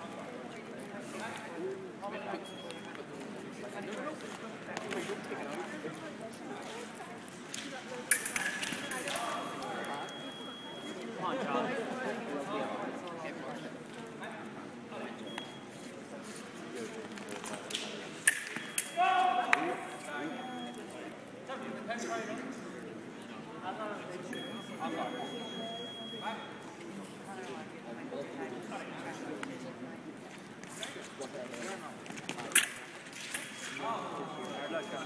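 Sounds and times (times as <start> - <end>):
fencing blades clacking: 7.5 - 9.7, 17.2 - 19.6, 32.1 - 33.8.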